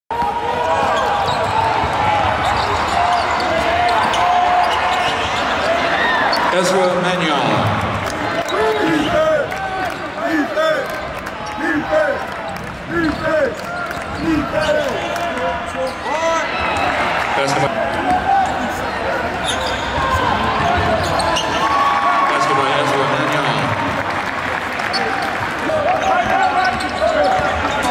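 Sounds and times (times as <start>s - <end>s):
crowd voices: 0.1s - 27.9s.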